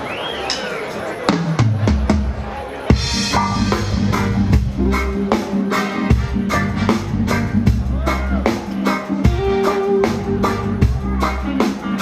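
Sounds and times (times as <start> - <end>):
live reggae band: 0.0 - 12.0
drum strokes: 1.3 - 12.0
bass notes: 2.9 - 12.0.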